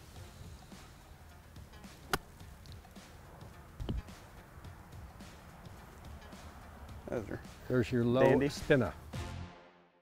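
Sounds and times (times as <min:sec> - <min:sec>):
golf club striking ball: 0:01.8 - 0:03.0.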